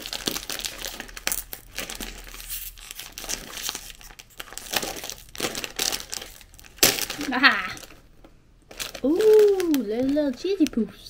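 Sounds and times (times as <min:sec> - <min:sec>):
plastic bag tearing open: 0:00.0 - 0:08.0, 0:08.7 - 0:10.9
plastic snack bag crinkling: 0:00.0 - 0:11.0.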